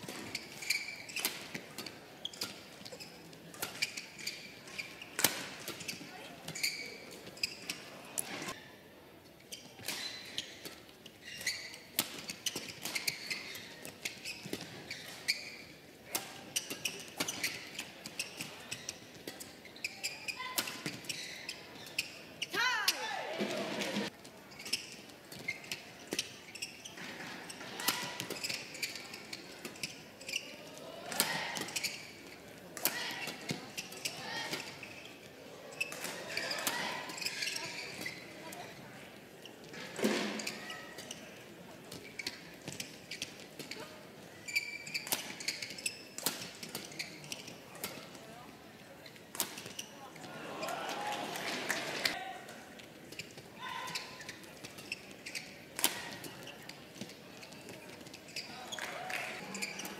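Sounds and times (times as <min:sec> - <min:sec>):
shoes squeaking on court floor: 0:00.0 - 0:50.6, 0:51.4 - 0:59.9.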